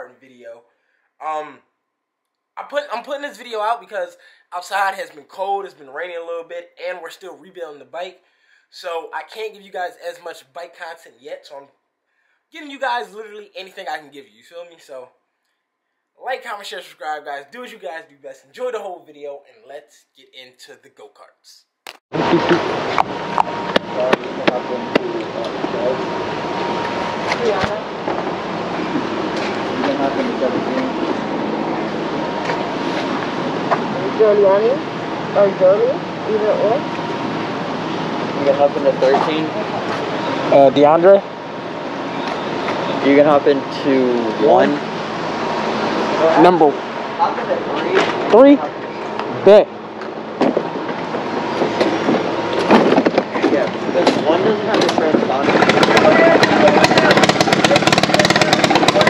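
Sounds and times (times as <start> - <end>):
indistinct voices: 1.2 - 1.6, 20.6 - 37.3, 38.2 - 41.3, 42.2 - 49.7, 53.4 - 59.0
kart engines: 22.2 - 59.0.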